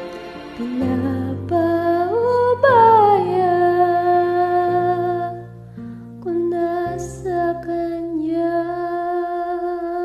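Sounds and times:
karaoke backing track: 0.0s - 5.5s.

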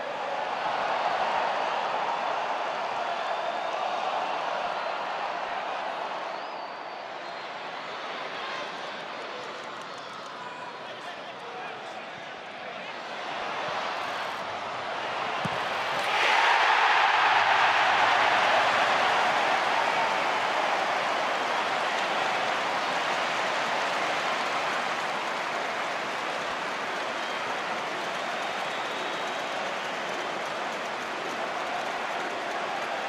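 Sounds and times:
stadium crowd cheering: 0.0s - 33.0s.

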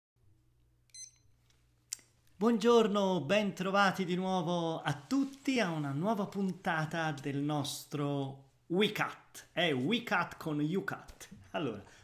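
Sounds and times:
high electronic beep: 0.9s - 1.2s.

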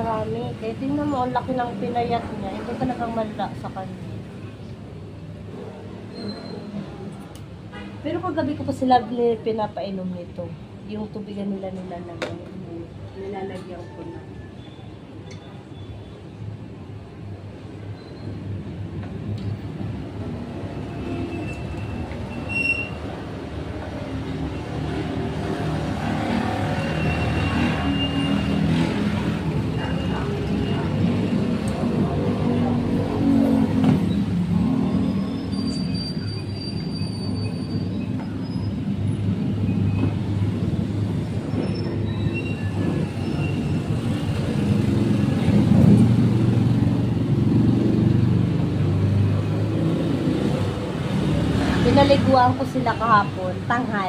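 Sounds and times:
high-pitched squeals: 21.0s - 23.2s, 34.1s - 40.1s, 41.3s - 44.4s.

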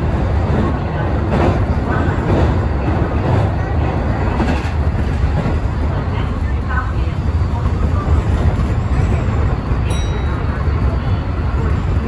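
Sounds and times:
train wheels rumbling on rail: 0.0s - 12.0s.

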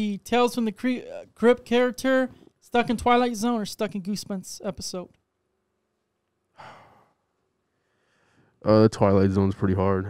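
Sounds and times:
person sighing: 6.6s - 7.2s.

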